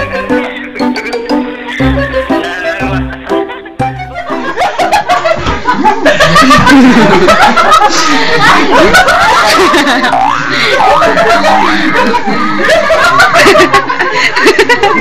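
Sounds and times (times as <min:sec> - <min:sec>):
excited voices: 0:00.0 - 0:15.0
people laughing loudly: 0:00.0 - 0:15.0.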